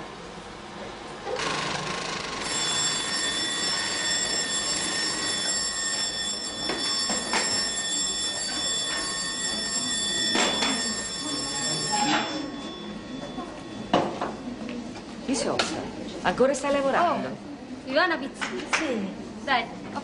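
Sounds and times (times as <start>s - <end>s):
workshop noise: 1.2s - 16.8s
electric bell ringing: 2.2s - 14.9s.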